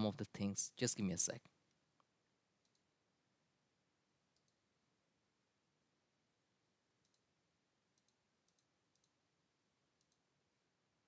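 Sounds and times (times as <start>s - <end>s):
faint computer mouse clicks: 2.0s - 2.9s, 4.3s - 4.6s, 7.0s - 7.2s, 8.0s - 9.2s, 10.0s - 10.2s.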